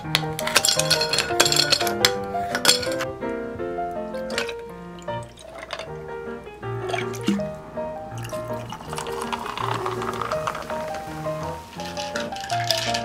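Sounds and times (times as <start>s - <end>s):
background music: 0.0s - 13.0s
carbonated water fizzing: 4.2s - 6.1s, 6.8s - 13.0s
liquid poured over ice: 4.3s - 6.0s, 6.8s - 7.6s, 8.2s - 13.0s.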